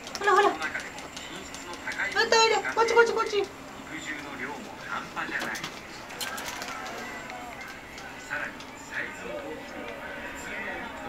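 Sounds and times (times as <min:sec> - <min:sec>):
faint television speech: 0:00.0 - 0:11.0.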